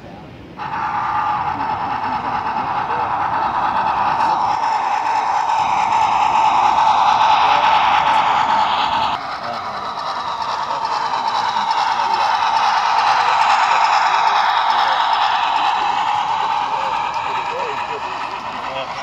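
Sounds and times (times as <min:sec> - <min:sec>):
model train wheels rattling on rails: 0:00.6 - 0:19.0.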